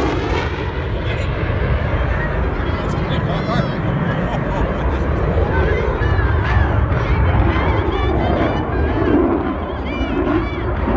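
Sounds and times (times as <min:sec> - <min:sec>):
jet engine rumble: 0:00.0 - 0:10.9.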